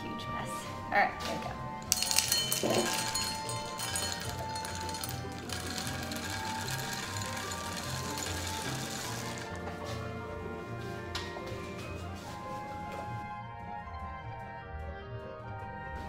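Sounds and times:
background music with steady beat: 0:00.0 - 0:16.0
dry kibble rattling into metal cup: 0:01.8 - 0:09.8.

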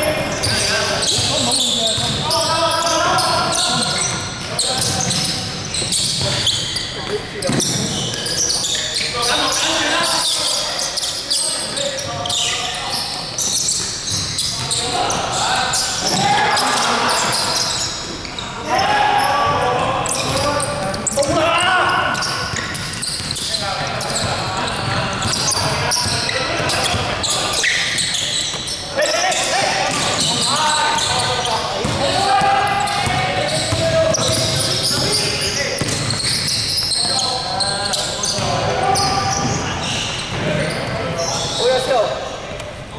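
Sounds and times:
players calling out: 0:00.0 - 0:42.3
basketball bouncing on wooden court: 0:00.3 - 0:02.3, 0:03.8 - 0:08.1, 0:22.1 - 0:27.1, 0:29.9 - 0:30.4, 0:31.8 - 0:37.2, 0:38.3 - 0:39.6.

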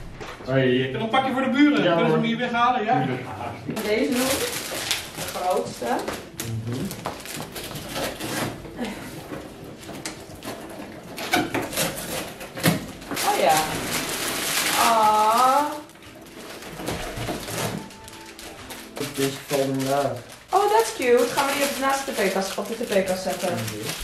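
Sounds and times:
cardboard and plastic rustling: 0:03.7 - 0:24.0.

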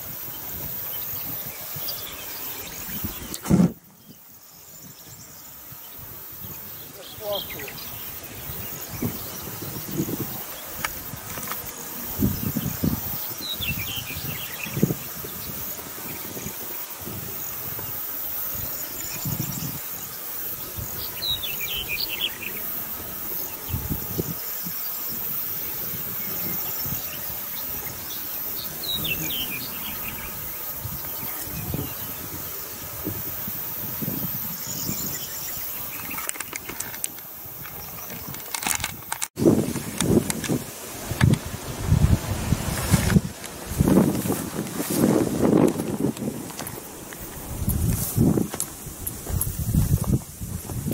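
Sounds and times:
wind buffeting microphone: 0:00.0 - 0:50.9
songbird chirping: 0:00.4 - 0:11.0, 0:18.3 - 0:22.8, 0:26.1 - 0:32.6.

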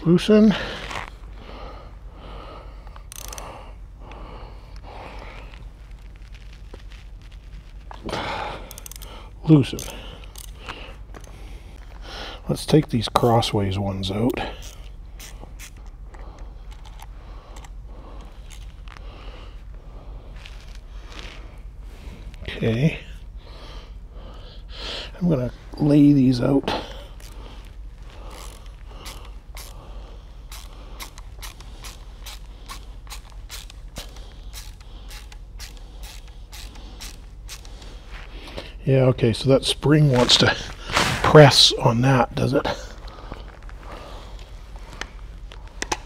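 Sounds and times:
faint steady hum: 0:00.0 - 0:46.0
person breathing: 0:00.5 - 0:05.7, 0:08.0 - 0:12.5, 0:14.4 - 0:22.4, 0:23.0 - 0:25.7, 0:26.7 - 0:33.2, 0:34.0 - 0:38.8, 0:42.7 - 0:45.8
ratchet clicking: 0:03.1 - 0:03.5, 0:08.7 - 0:09.1, 0:09.8 - 0:10.6, 0:14.6 - 0:15.9, 0:28.3 - 0:29.8, 0:30.5 - 0:37.9.

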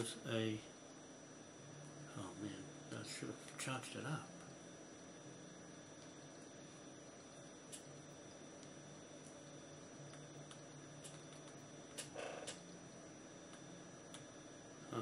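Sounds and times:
faint low hum: 0:00.0 - 0:15.0.

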